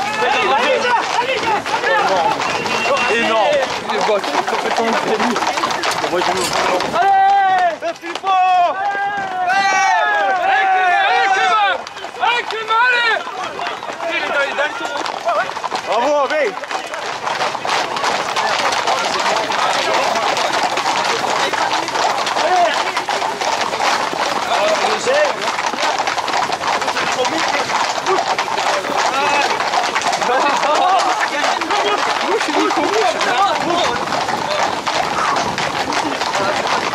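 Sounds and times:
crowd noise: 0:00.0 - 0:36.9
horse hooves on asphalt: 0:00.0 - 0:36.9
people shouting: 0:00.0 - 0:36.9
running footsteps: 0:00.0 - 0:36.9.

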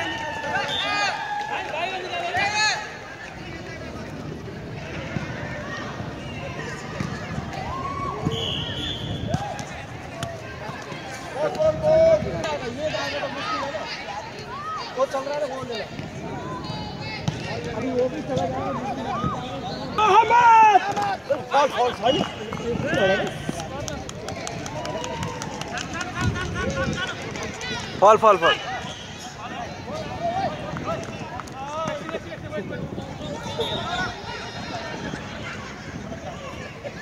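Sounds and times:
players shouting: 0:04.8 - 0:25.8
running footsteps: 0:20.8 - 0:28.4.

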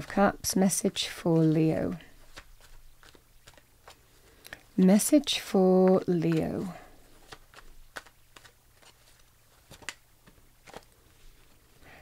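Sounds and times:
cards being shuffled: 0:00.9 - 0:11.6.

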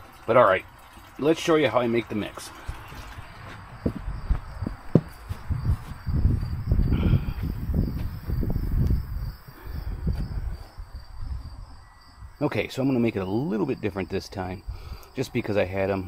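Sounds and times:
footsteps on grass: 0:02.6 - 0:06.6
insects chirring: 0:02.6 - 0:16.0.

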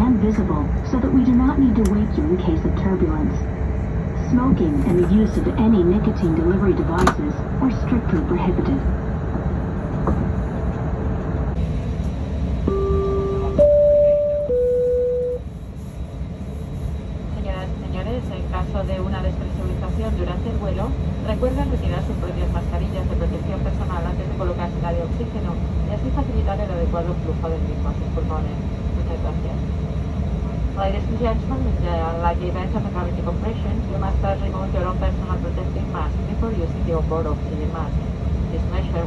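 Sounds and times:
low rumble of aircraft cabin: 0:00.0 - 0:39.0
three-note electronic chime: 0:12.7 - 0:15.4.

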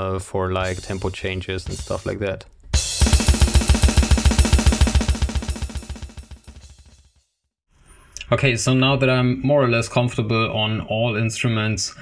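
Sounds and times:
electronic drum kit played fast: 0:00.6 - 0:07.1.

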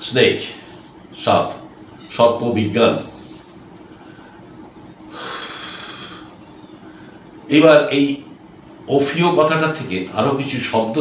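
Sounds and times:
faint room hum: 0:00.0 - 0:11.0
man breathing: 0:05.1 - 0:07.3.

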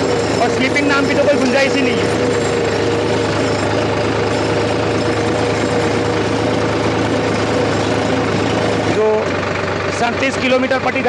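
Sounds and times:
steady high hum: 0:00.0 - 0:10.4
tractor diesel engine running: 0:00.0 - 0:11.0.

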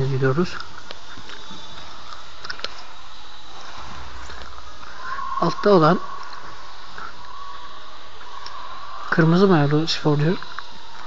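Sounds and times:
faint high hum: 0:00.0 - 0:11.0.

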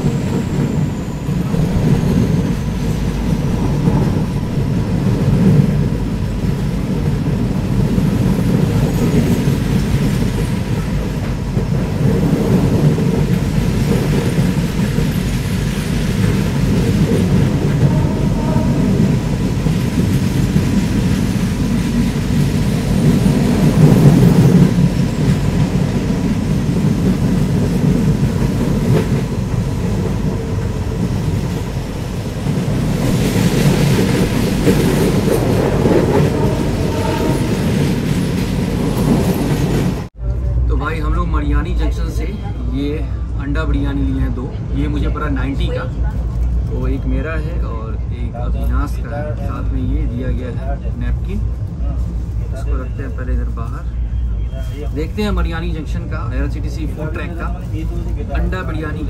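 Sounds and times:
train wheels rumbling on rails: 0:00.0 - 0:59.0.

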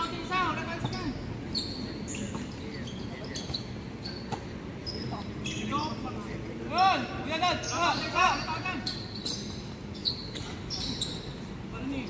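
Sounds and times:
players calling out: 0:00.0 - 0:12.0.

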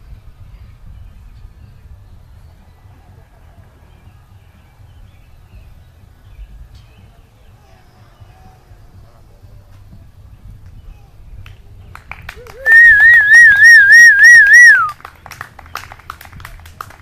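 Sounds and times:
warbling cheering whistle: 0:12.6 - 0:15.0.

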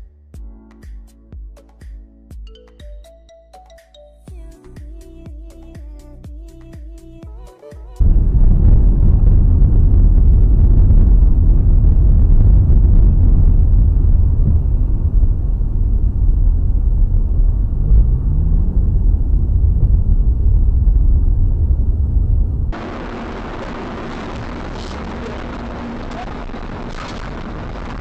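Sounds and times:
car driving on wet road: 0:08.0 - 0:28.0
car engine: 0:08.0 - 0:28.0.

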